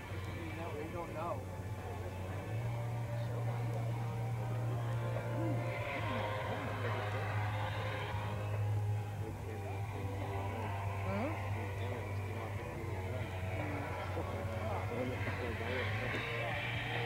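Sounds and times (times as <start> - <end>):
people talking: 0.0 - 7.7, 9.2 - 17.0
background music: 0.0 - 17.0
steady low hum: 0.0 - 17.0.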